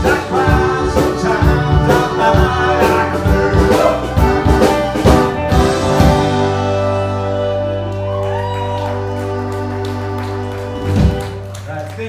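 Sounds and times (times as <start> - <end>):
live band playing soft rock: 0.0 - 12.0.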